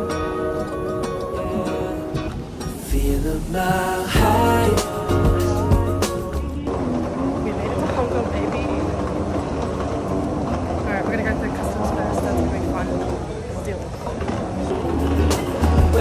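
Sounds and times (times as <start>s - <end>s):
steady low rumble: 2.8s - 9.3s.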